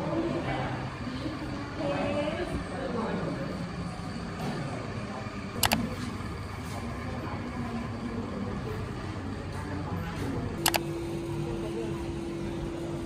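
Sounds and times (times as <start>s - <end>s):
faint background voices: 0.0s - 13.0s
sharp double click: 10.6s - 10.8s.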